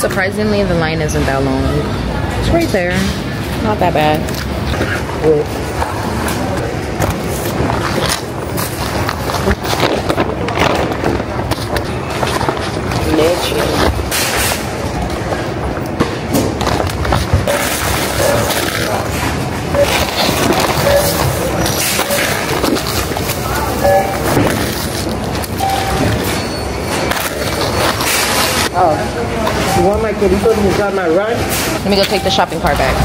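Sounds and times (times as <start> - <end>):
store chatter: 0.0 - 33.0
plastic bags rustling: 5.6 - 28.9
store music: 17.5 - 28.5.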